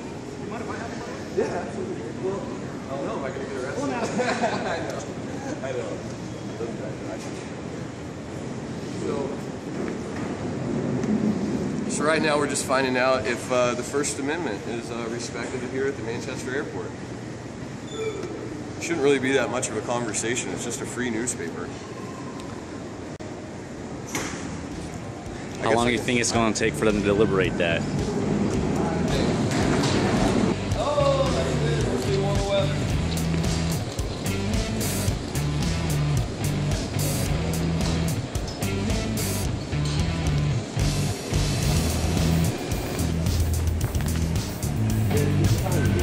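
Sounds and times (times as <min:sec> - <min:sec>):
airport terminal background noise: 0:00.0 - 0:46.0
background music with bass and drums: 0:30.5 - 0:46.0.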